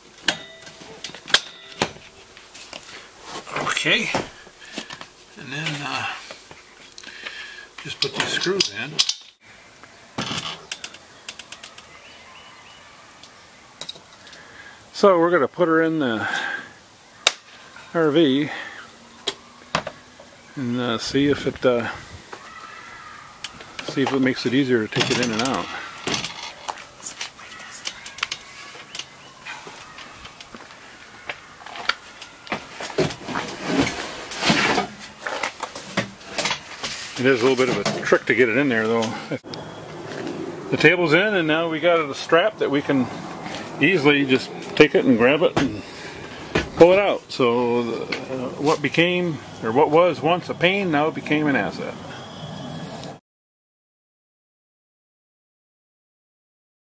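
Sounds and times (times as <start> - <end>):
table scraping: 33.0 - 35.4.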